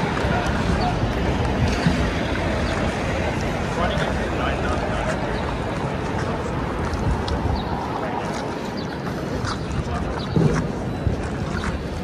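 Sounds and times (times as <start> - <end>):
passing traffic: 0.0 - 12.0
wind buffeting microphone: 0.0 - 12.0.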